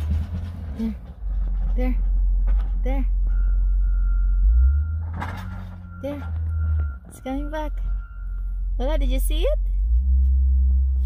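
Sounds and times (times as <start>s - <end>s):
road grader engine rumble: 0.0s - 11.0s.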